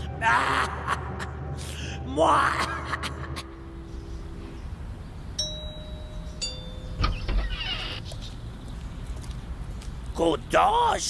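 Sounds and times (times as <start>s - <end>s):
two-tone doorbell chime: 5.4s - 7.1s.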